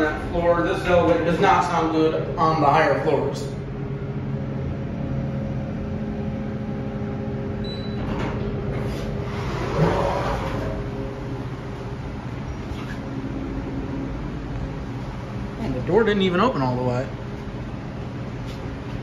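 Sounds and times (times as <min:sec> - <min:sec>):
elevator machine hum: 0:00.0 - 0:19.0
elevator doors sliding open: 0:07.6 - 0:11.5.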